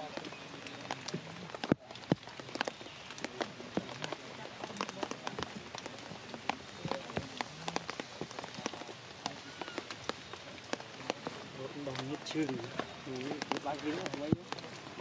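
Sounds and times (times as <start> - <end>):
rain on leaves and rock: 0.0 - 15.0.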